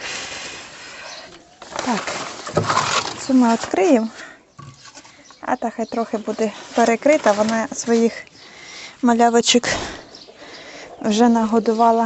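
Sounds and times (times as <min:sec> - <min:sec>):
plastic sheeting rustling: 0:00.0 - 0:04.1, 0:06.4 - 0:08.2.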